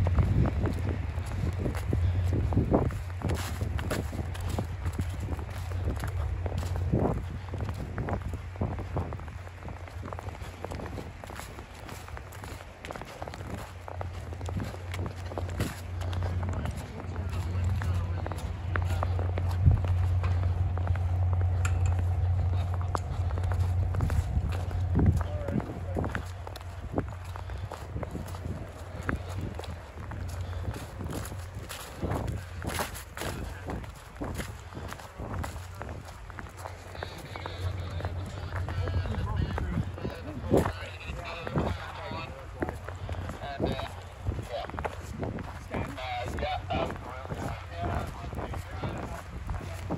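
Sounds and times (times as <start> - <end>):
footsteps crunching in snow and leaves: 0.0 - 49.9
low steady hum: 0.0 - 49.9.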